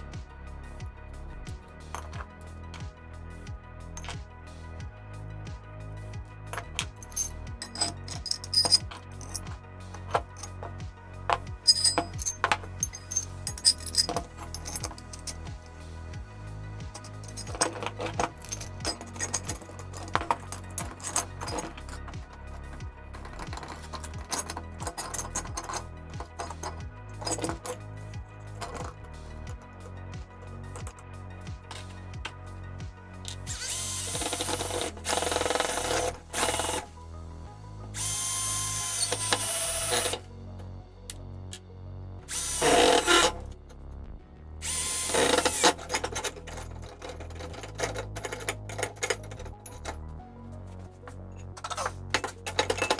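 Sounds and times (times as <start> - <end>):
background music: 0.0 - 52.9
metal parts clinking: 1.9 - 2.8, 4.0 - 4.2, 6.5 - 15.6, 16.9 - 27.8, 28.4 - 29.8, 30.7 - 31.0, 31.7 - 32.0, 33.2 - 36.9, 38.8 - 40.2, 42.3 - 43.5, 44.7 - 50.1, 51.4 - 52.9
cordless drill running: 33.5 - 36.8, 38.0 - 40.2, 42.3 - 43.4, 44.6 - 45.8.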